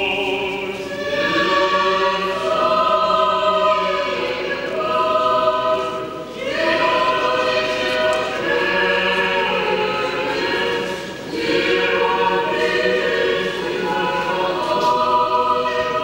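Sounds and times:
choir singing a cappella: 0.0s - 16.0s.

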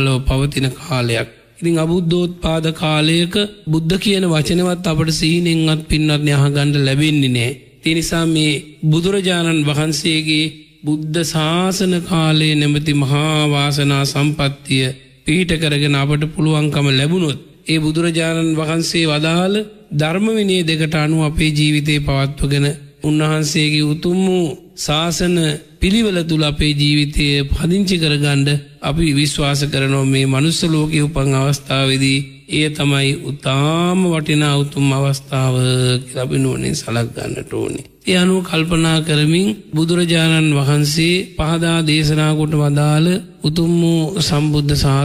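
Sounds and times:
man chanting sermon: 0.0s - 45.0s.

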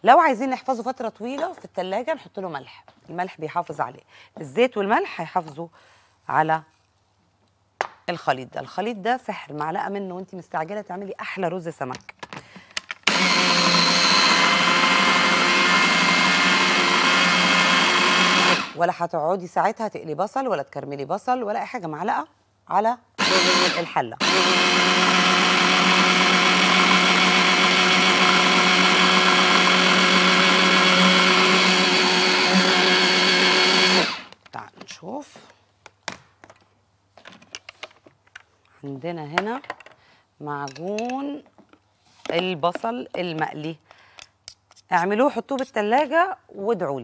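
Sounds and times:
food processor motor running: 13.1s - 18.8s, 23.2s - 34.3s.

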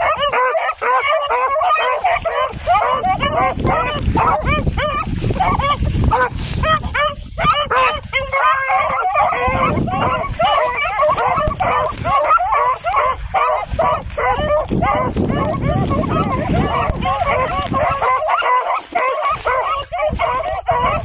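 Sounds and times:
hounds baying: 0.0s - 21.0s.

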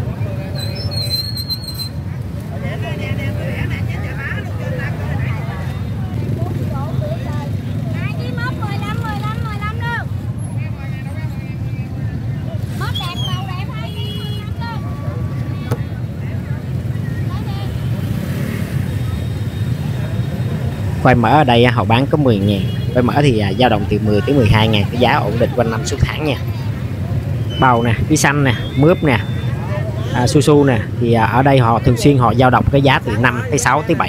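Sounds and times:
low rumble of engines: 0.0s - 34.0s
voices of vendors and shoppers: 0.0s - 34.0s.

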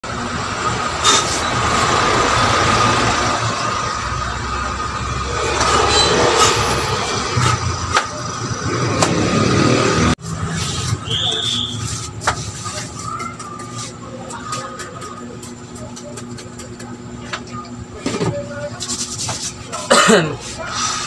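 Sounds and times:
street traffic: 0.0s - 21.0s.

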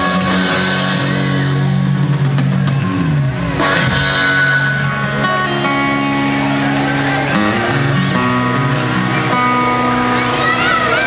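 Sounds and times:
live band with guitars: 0.0s - 11.0s.

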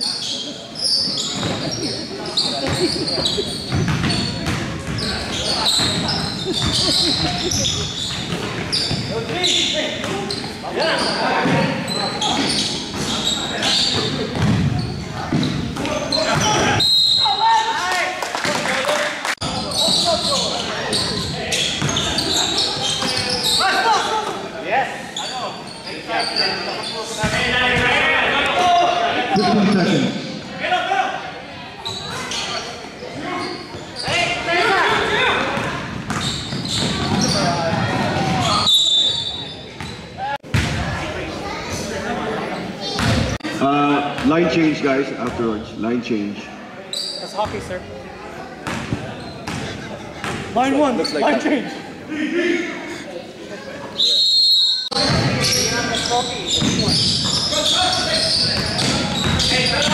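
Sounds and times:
players' voices echoing: 0.0s - 54.3s, 54.9s - 59.9s.

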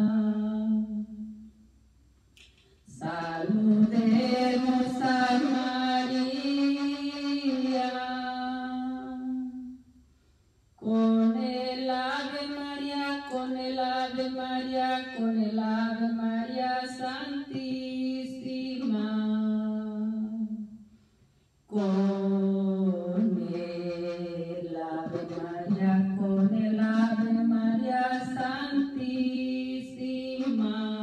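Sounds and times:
woman singing a hymn unaccompanied: 0.0s - 1.5s, 2.9s - 9.8s, 10.8s - 20.8s, 21.7s - 31.0s.

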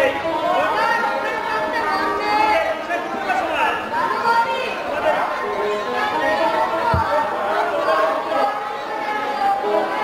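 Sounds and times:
low thump: 6.9s - 7.2s.

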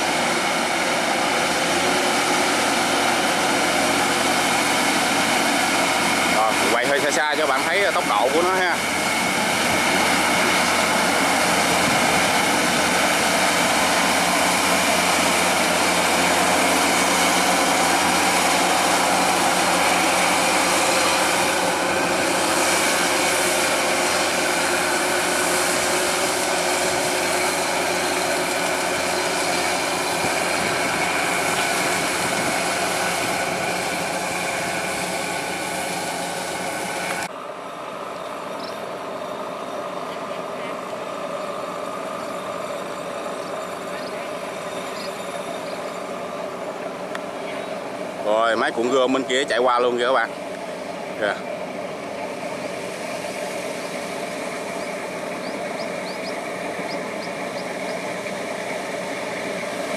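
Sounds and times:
combine harvester running: 0.0s - 59.9s.

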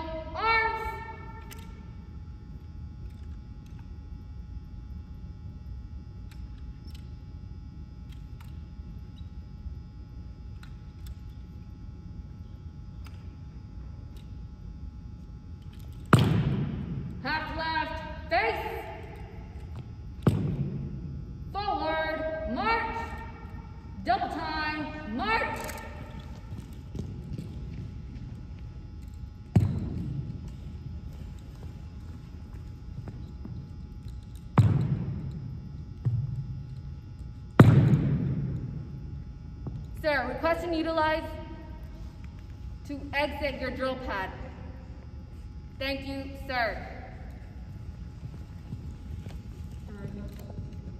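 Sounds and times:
person shouting commands: 0.0s - 1.4s, 17.2s - 19.0s, 24.0s - 26.0s.

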